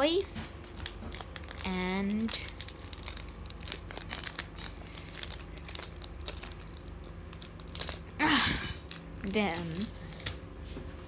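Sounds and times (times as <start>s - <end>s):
plastic wrapper crinkling: 0.6s - 10.3s.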